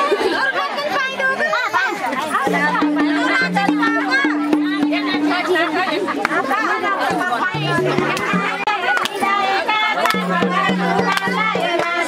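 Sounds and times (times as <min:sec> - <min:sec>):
crowd chatter: 0:00.0 - 0:12.0
frame drum beating: 0:02.4 - 0:09.3, 0:10.1 - 0:12.0
women singing folk song: 0:02.5 - 0:12.0.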